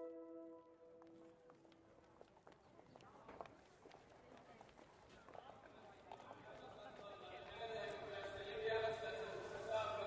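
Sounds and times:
low murmur of voices: 1.6s - 10.0s.

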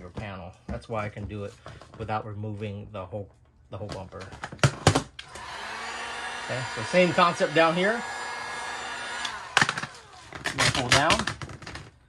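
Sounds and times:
heat gun blowing: 5.2s - 11.0s.

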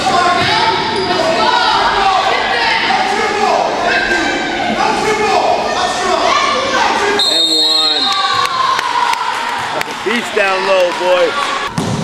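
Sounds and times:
voices and shouts: 0.0s - 11.7s.

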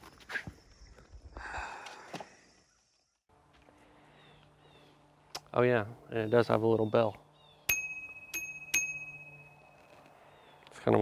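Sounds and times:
bicycle bell ringing: 7.7s - 10.1s.

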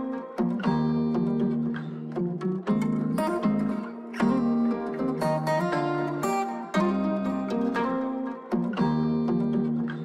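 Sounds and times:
plucked string melody: 0.0s - 10.0s.

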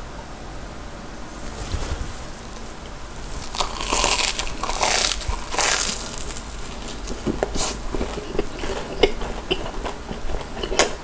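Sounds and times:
crunchy food being chewed: 1.4s - 11.0s.

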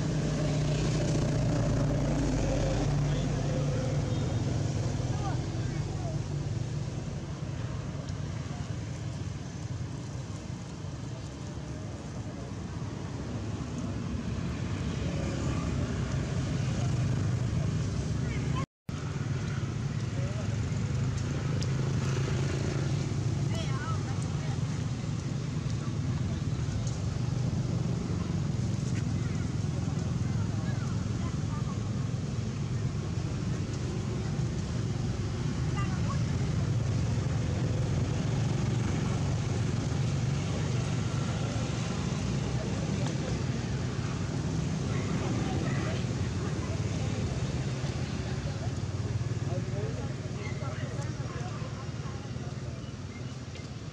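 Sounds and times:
low outdoor rumble: 0.0s - 53.9s
faint indistinct voices: 22.2s - 53.9s.

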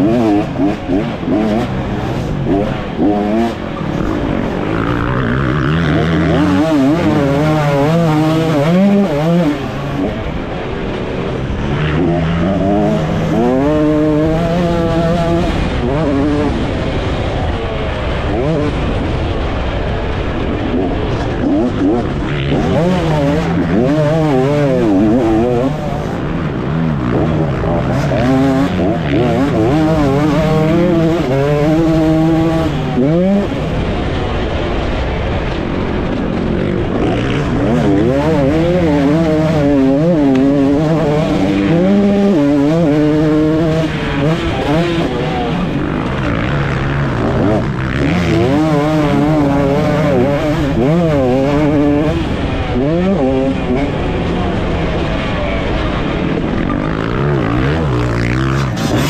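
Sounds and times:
motocross engine revving: 0.0s - 59.0s.

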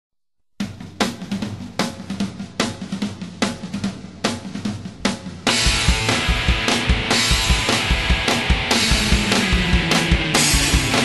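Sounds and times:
drum kit driving beat: 0.6s - 11.0s
punk rock band playing: 0.9s - 11.0s.

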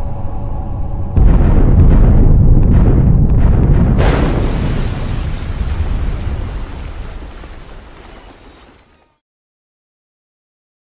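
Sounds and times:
deep rumble: 0.0s - 8.7s
explosion-like burst: 1.2s - 9.0s.

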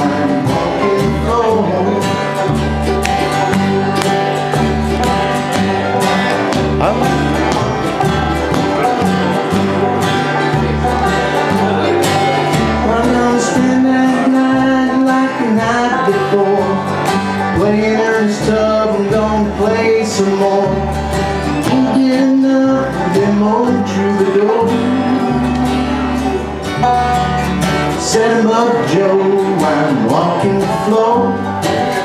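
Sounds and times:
bluegrass band playing: 0.0s - 32.0s
upright bass pulsing: 0.0s - 32.0s.

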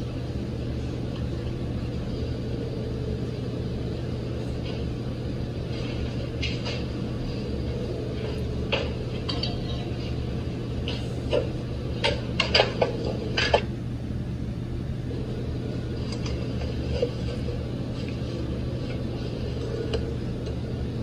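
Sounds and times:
steady low hum: 0.0s - 21.0s
sharp knocks and clatters: 10.8s - 13.7s.

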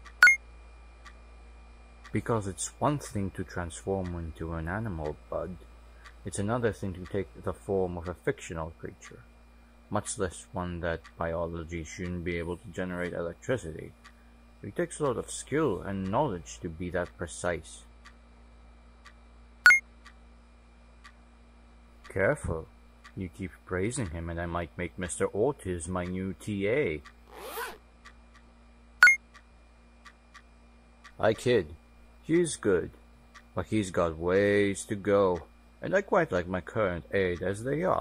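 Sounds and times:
low steady hum: 0.0s - 38.0s
electronic blip: 0.2s - 0.4s, 19.6s - 19.8s, 29.0s - 29.2s
clock ticking: 4.0s - 4.2s, 28.0s - 29.4s.

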